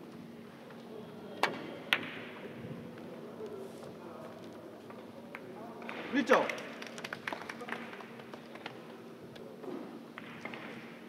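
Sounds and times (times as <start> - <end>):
billiard balls colliding click: 1.4 - 2.4, 10.2 - 11.0.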